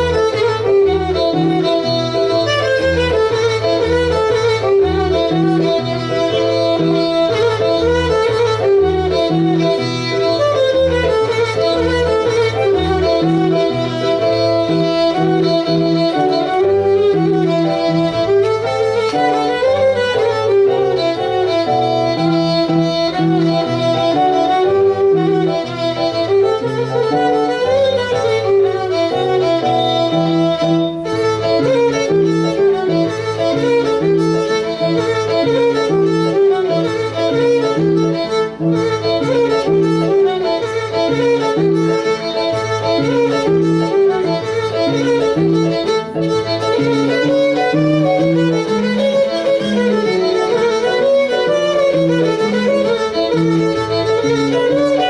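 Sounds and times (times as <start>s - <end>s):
bowed folk fiddle playing dance tune: 0.0s - 55.0s.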